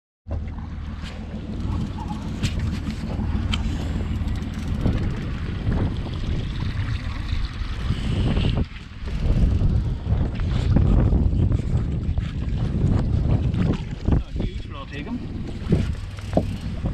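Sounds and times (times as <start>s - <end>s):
water slapping boat hull: 0.3s - 16.9s
wind buffeting microphone: 0.5s - 16.9s.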